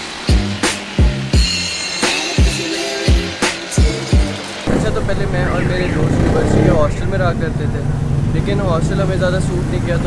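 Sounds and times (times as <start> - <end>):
low background rumble: 4.7 - 8.8
young man talking: 4.7 - 10.0.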